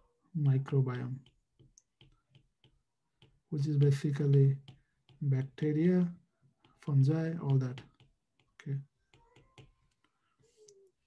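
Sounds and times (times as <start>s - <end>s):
stylus tapping tablet screen: 0.4s - 10.9s.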